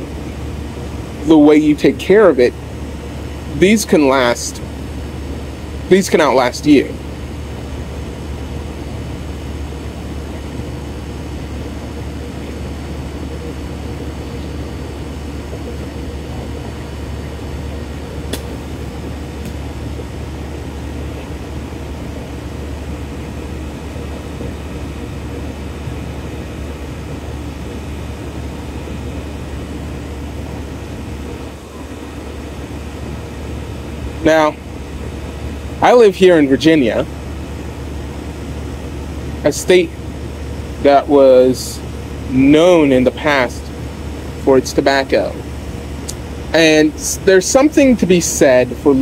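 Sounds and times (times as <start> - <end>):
low hum: 0.0 - 49.0.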